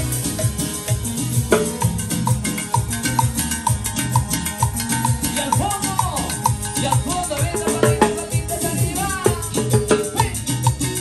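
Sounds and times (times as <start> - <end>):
live band playing: 0.0 - 11.0.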